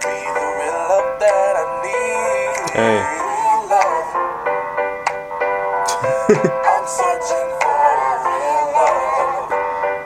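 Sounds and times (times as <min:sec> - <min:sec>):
keyboard accompaniment: 0:00.0 - 0:10.0
voices singing: 0:00.4 - 0:04.2, 0:05.9 - 0:09.7.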